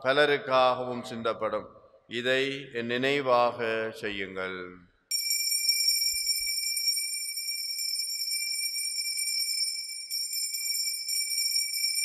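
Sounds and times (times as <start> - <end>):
altar bells jingling: 5.1 - 12.0.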